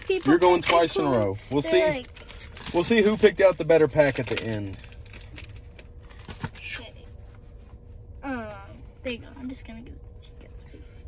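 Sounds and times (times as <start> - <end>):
cards rustling: 0.0 - 7.5.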